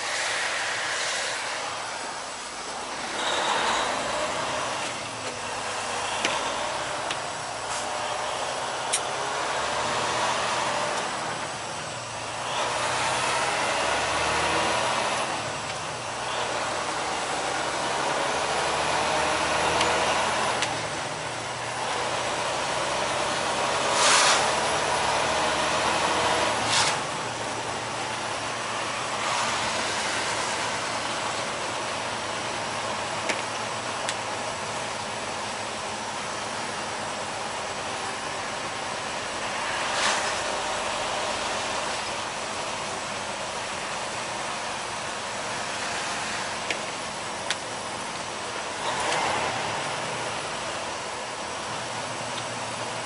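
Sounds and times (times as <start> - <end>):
tyre hiss on wet road: 0.0 - 4.7, 5.5 - 8.3, 23.8 - 25.8, 26.5 - 31.3, 39.2 - 42.6, 44.8 - 47.4
truck engine drone: 0.0 - 53.0.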